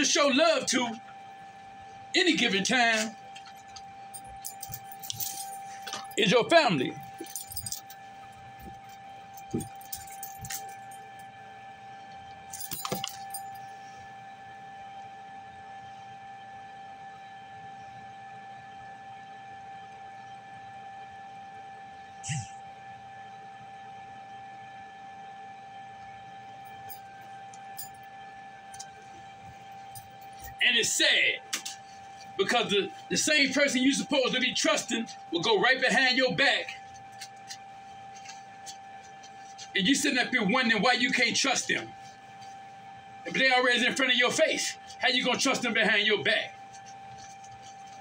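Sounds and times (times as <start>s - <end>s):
high-pitched whine: 0.0s - 18.6s, 22.0s - 23.4s, 25.8s - 48.0s
faint clinks and knocks: 3.3s - 6.2s, 7.0s - 8.0s, 8.6s - 11.0s, 12.5s - 13.8s.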